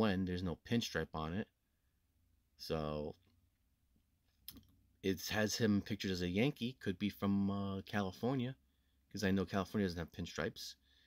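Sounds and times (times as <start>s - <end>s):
person speaking: 4.4s - 10.8s.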